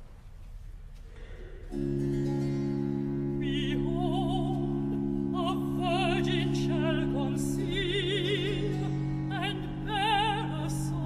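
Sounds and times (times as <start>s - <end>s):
faint room noise: 0.0s - 6.0s
held baroque continuo chord: 1.6s - 11.0s.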